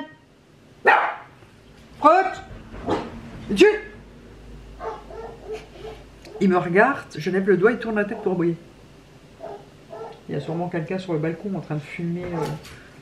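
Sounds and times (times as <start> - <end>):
small dog barking: 0.8 - 1.4, 4.8 - 6.5, 8.1 - 8.4, 9.4 - 10.3, 12.3 - 12.6.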